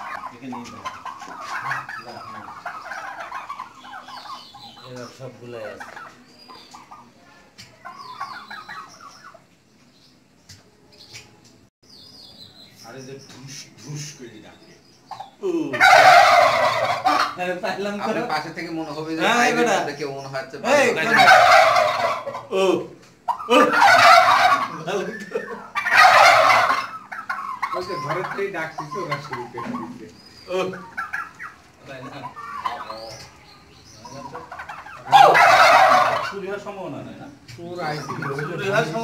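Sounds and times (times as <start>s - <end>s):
turkeys calling: 0.0s - 39.0s.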